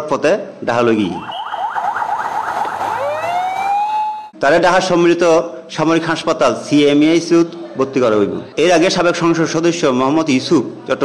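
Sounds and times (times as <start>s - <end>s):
emergency vehicle siren: 1.2s - 4.4s.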